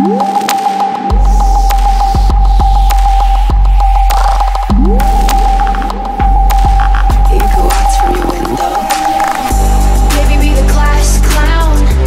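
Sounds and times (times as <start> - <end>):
electronic music: 0.0 - 11.4.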